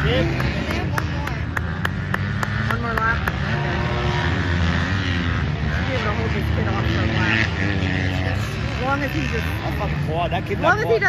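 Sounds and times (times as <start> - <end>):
people talking: 0.0 - 1.6, 2.4 - 3.6, 5.7 - 7.5, 8.1 - 11.0
distant motorbike engines droning: 0.0 - 11.0.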